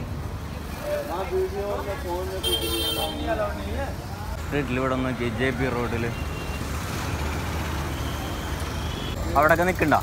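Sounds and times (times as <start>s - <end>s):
road traffic noise: 0.0s - 10.0s
auto-rickshaw engine running: 4.2s - 10.0s.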